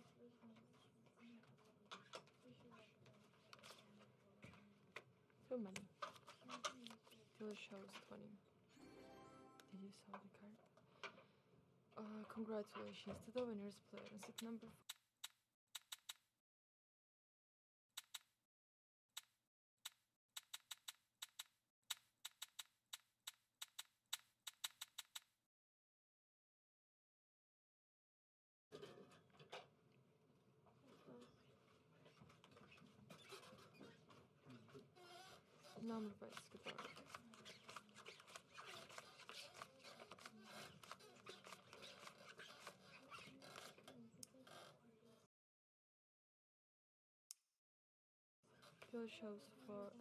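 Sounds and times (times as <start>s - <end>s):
playing cards clicking and rustling: 5.8s - 7.2s, 15.2s - 16.2s, 19.9s - 25.3s, 36.4s - 43.8s
sharp chip clicks: 14.2s - 16.3s, 18.0s - 18.3s, 19.2s - 25.3s.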